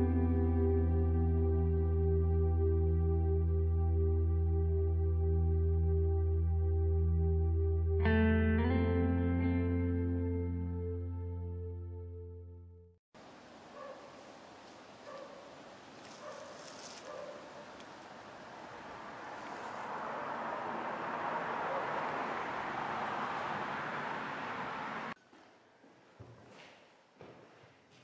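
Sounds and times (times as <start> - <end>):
distant dog barks: 13.7 - 14.3, 15.0 - 17.8, 19.8 - 22.4.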